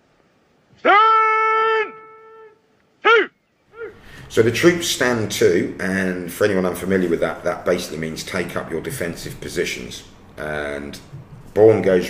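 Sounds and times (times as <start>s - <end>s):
man shouting military command: 0.8s - 2.2s, 3.0s - 3.9s
soldiers shouting: 0.8s - 2.4s, 3.0s - 4.0s.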